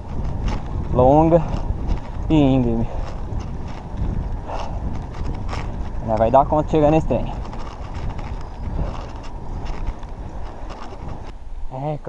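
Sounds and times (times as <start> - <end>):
small rattling clicks from bike: 0.0 - 11.4
bike tyres rolling on asphalt: 0.0 - 11.9
wind rumbling on microphone: 0.0 - 12.0.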